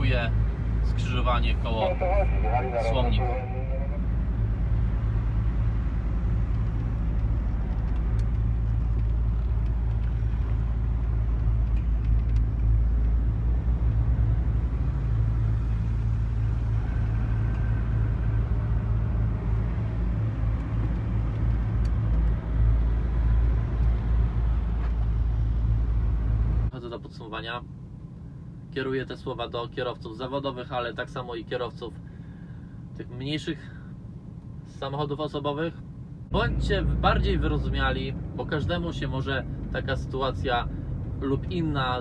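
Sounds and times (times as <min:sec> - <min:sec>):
truck diesel engine drone: 0:00.0 - 0:26.9
road noise: 0:00.0 - 0:42.0.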